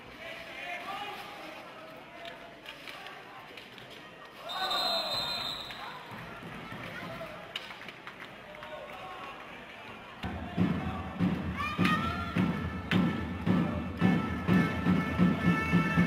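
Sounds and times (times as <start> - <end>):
referee's whistle: 4.4 - 6.0
music with thumping beat: 10.3 - 16.0.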